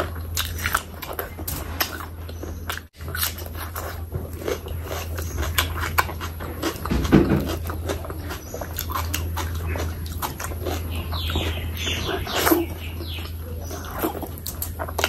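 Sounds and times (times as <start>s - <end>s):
low electrical hum: 0.0s - 15.0s
wet chewing: 0.0s - 15.0s.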